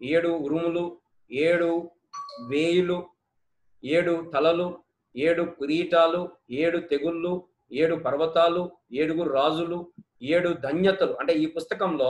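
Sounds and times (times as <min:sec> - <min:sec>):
man speaking: 0:00.0 - 0:03.1, 0:03.8 - 0:12.0
short electronic chime: 0:02.2 - 0:02.8.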